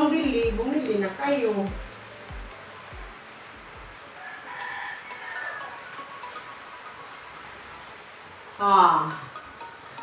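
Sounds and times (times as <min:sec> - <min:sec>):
rooster crowing: 0:04.0 - 0:06.2.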